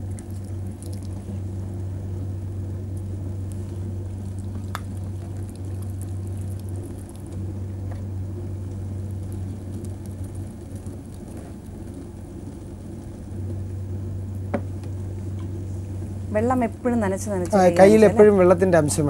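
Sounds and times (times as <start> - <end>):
potter's wheel rumbling: 0.0 - 19.0.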